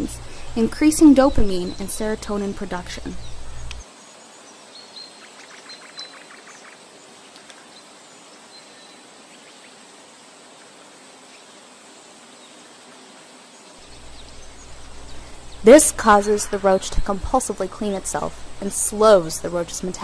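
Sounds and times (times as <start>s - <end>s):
soft hiss: 0.0s - 20.0s.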